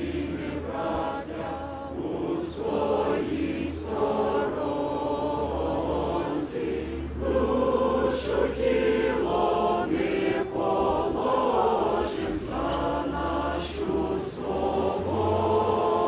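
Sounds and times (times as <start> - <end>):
choir singing in harmony: 0.0 - 16.0.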